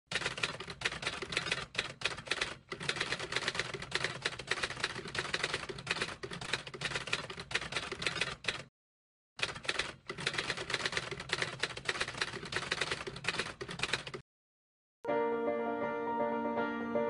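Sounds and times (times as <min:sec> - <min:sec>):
typewriter keys clacking: 0:00.1 - 0:08.7, 0:09.4 - 0:14.2.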